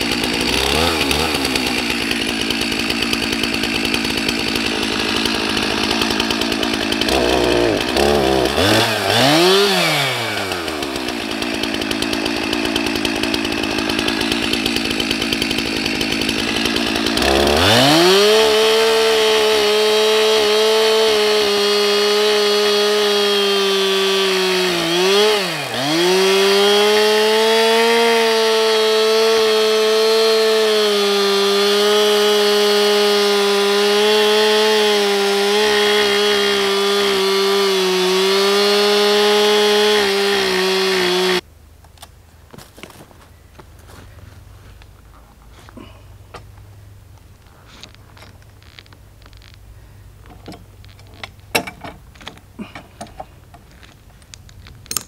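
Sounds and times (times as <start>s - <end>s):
chainsaw cutting log: 0.0s - 42.0s, 43.8s - 55.0s.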